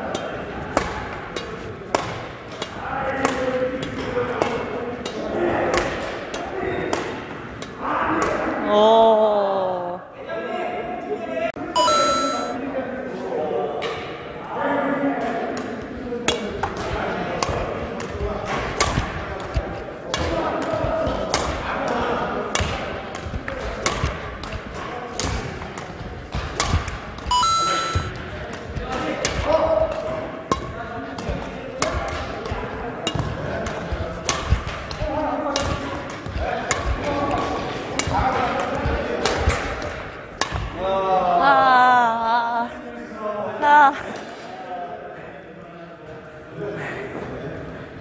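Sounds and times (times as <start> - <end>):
rackets striking shuttlecocks: 0.0 - 8.4, 15.6 - 40.8
voices in a hall: 0.0 - 48.0.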